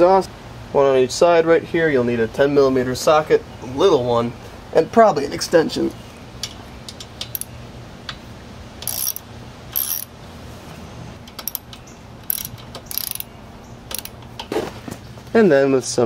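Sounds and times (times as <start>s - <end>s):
socket ratchet clicking: 6.9s - 7.5s, 8.8s - 10.1s, 11.2s - 14.4s.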